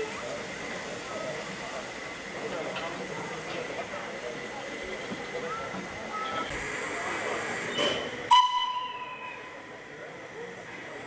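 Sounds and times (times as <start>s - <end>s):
steam hissing: 0.0s - 11.0s
steam whistle blast: 8.3s - 9.6s.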